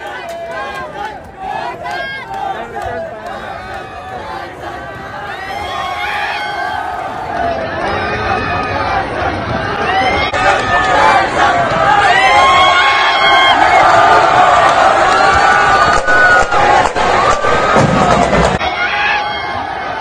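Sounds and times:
crowd cheering and shouting: 0.0 - 20.0.

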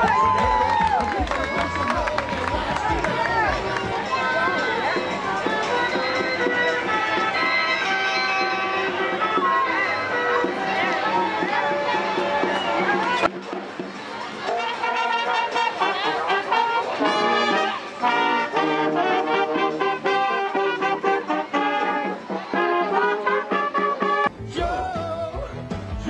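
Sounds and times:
marching brass band playing: 0.0 - 4.0, 14.4 - 24.5.

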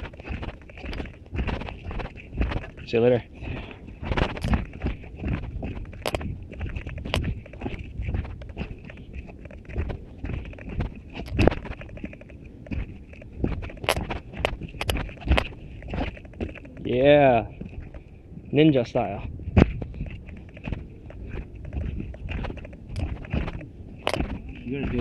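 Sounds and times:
running footsteps on steps: 0.0 - 25.0
camera handling bumps: 4.0 - 16.9, 19.6 - 25.0.

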